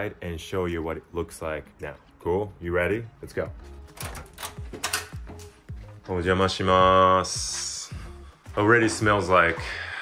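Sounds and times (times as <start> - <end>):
soft background music: 0.0 - 10.0
door frame clicks and knocks: 3.9 - 5.3.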